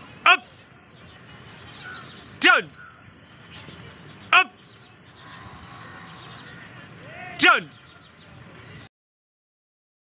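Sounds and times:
faint outdoor background: 0:00.0 - 0:08.9
man shouting a command: 0:00.2 - 0:00.5, 0:02.4 - 0:02.8, 0:04.3 - 0:04.6, 0:07.0 - 0:07.8.

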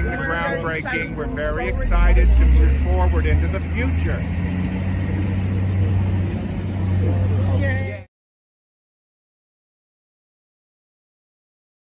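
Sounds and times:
low engine rumble: 0:00.0 - 0:08.1
outdoor background noise: 0:00.0 - 0:08.1.

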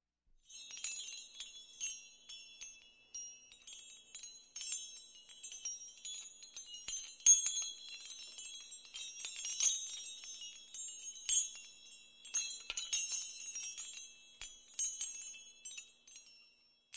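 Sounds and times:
glassy tinkling chimes: 0:00.4 - 0:16.9.

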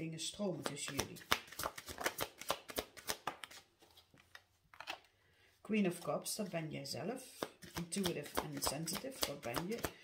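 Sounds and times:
cards being shuffled: 0:00.6 - 0:05.1, 0:07.3 - 0:10.0.

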